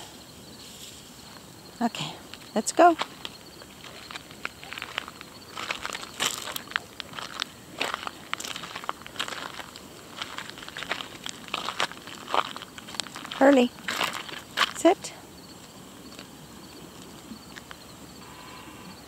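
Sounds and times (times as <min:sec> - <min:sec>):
footsteps crunching on gravel: 0:02.3 - 0:15.0.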